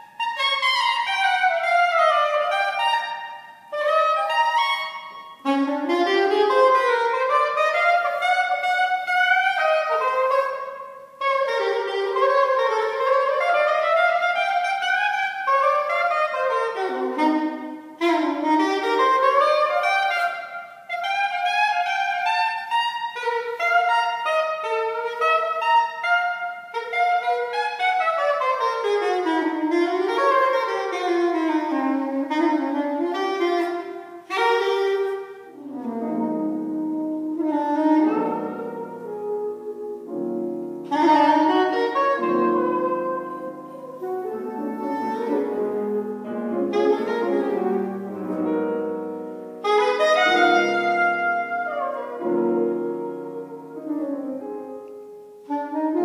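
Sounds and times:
piano chords: 0.0s - 56.0s
saxophone playing fast runs: 0.0s - 56.0s.

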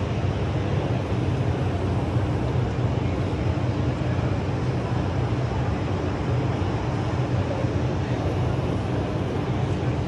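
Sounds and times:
continuous low hum: 0.0s - 10.0s.

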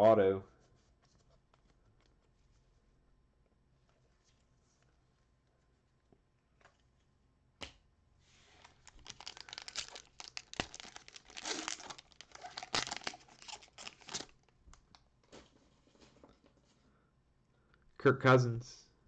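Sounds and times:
wrapper tearing and crinkling: 8.6s - 14.9s.

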